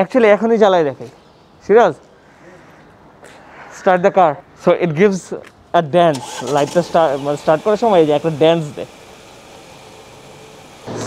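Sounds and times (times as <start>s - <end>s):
car engine idling: 6.1s - 11.0s.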